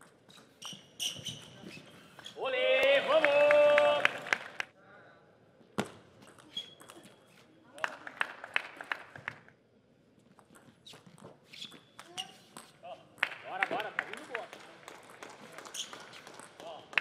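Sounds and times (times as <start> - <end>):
brief high squeak: 0.3 - 2.4.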